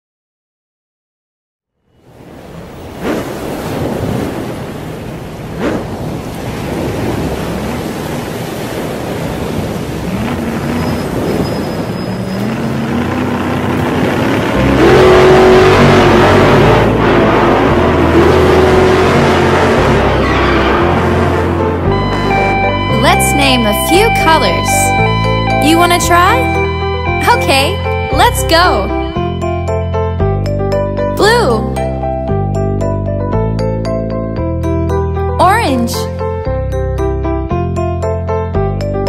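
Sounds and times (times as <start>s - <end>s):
ocean waves: 2.0s - 29.6s
race car engines revving: 9.2s - 29.1s.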